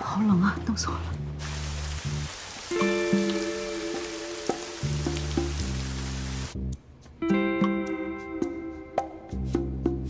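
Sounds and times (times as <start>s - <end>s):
background music with bass line: 1.1s - 10.0s
steady rain: 1.4s - 6.6s.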